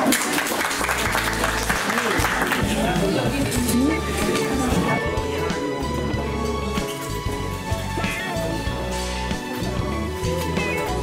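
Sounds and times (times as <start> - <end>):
people clapping: 0.0 - 3.6
background music: 0.0 - 11.0.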